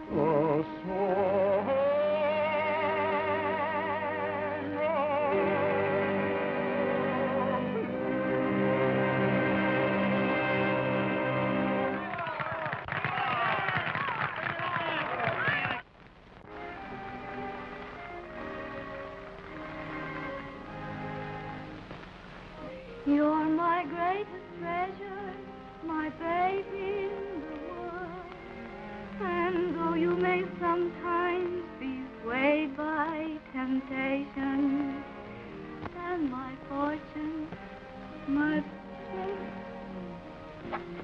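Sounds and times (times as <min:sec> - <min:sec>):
man singing with vibrato: 0:00.0 - 0:07.8
quiet orchestral background music: 0:00.0 - 0:12.2, 0:16.5 - 0:41.0
orchestra playing: 0:01.9 - 0:12.1, 0:16.6 - 0:21.8.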